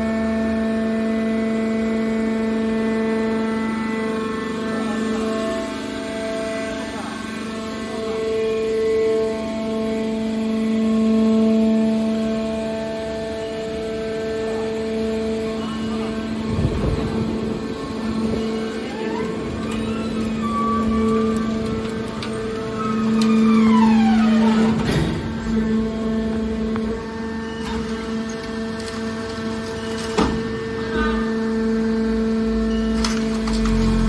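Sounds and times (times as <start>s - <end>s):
hydraulic power unit humming: 0.0s - 34.0s
rising and falling whine: 2.4s - 28.3s.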